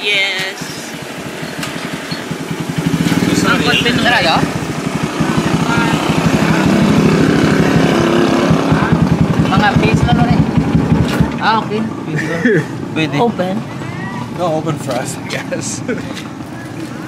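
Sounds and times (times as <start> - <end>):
voices: 0.0 - 17.0
small engine idling: 0.2 - 12.0.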